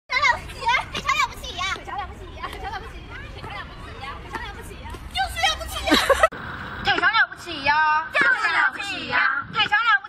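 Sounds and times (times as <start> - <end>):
high-pitched excited shouts: 5.1 - 6.2.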